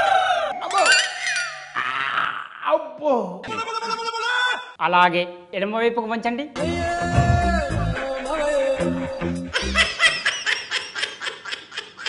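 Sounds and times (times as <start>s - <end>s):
man's drawn-out vocal cry: 6.6s - 9.0s.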